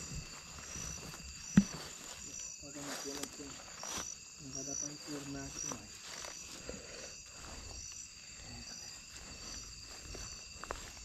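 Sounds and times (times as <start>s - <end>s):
footsteps through grass and brush: 0.0s - 11.0s
insect chirp: 0.0s - 11.0s
insects trilling: 0.0s - 11.0s.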